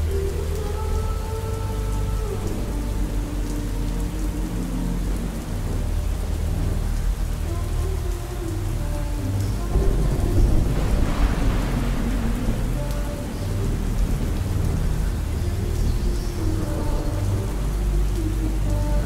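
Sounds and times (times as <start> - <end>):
faint slow song: 0.0 - 19.0
heavy rain: 0.0 - 19.0
low rumble of thunder: 0.0 - 19.0.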